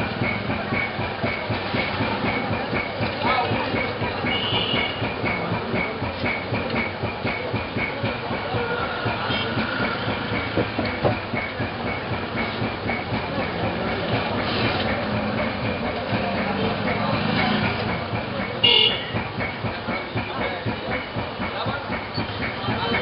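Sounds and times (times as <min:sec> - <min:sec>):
steady noisy din: 0:00.0 - 0:23.0.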